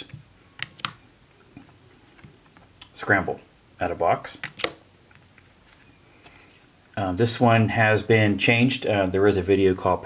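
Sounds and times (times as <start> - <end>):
cards clicking and tapping: 0.0 - 1.0, 4.4 - 5.8.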